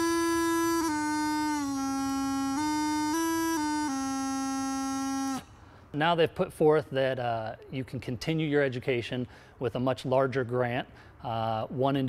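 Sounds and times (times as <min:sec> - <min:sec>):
bagpipe chanter steady note: 0:00.0 - 0:05.8.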